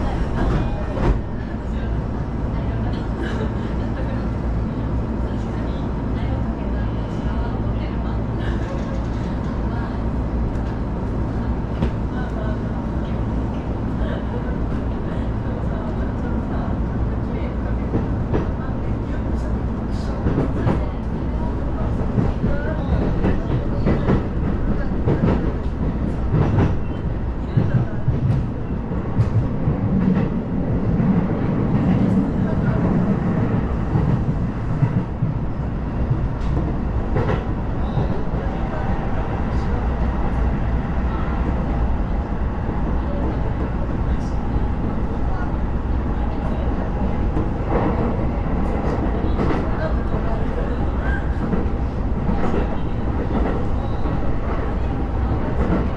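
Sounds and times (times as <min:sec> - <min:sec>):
train wheel-on-rail running noise: 0:00.0 - 0:55.9.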